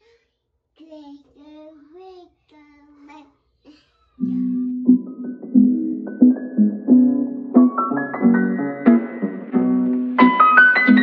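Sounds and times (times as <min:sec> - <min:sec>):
toddler singing: 0:00.8 - 0:04.7.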